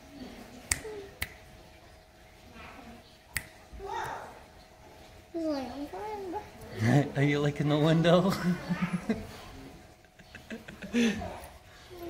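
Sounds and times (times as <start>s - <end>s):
finger snaps: 0.7s - 1.4s, 3.3s - 3.6s.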